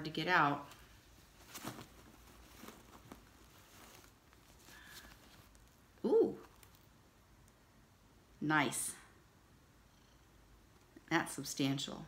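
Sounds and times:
faint rustling of wrapping: 0:00.0 - 0:07.7.

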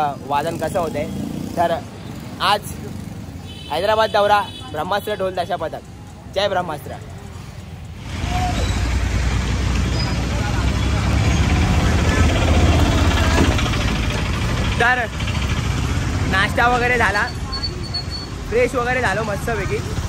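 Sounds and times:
auto-rickshaw engines running: 0:00.0 - 0:20.0
motor scooter engines: 0:00.0 - 0:20.0.

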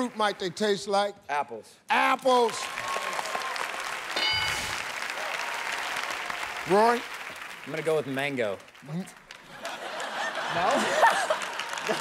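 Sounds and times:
audience applauding: 0:02.3 - 0:12.0
short bright chime: 0:04.2 - 0:04.8.

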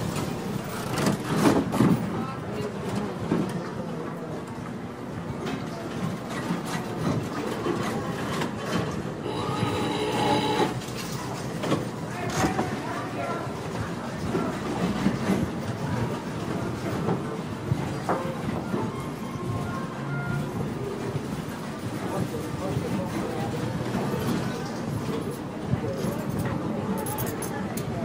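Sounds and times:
crowd chatter: 0:00.0 - 0:28.0
slot machine tones: 0:09.2 - 0:10.8.

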